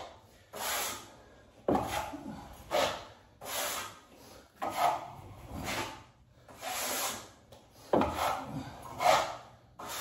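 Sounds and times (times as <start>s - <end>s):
drywall knife scraping wall: 0.0s - 10.0s.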